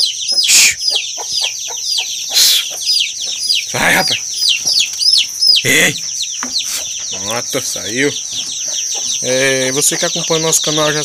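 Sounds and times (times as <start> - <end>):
chicks peeping shrilly: 0.0 - 11.0.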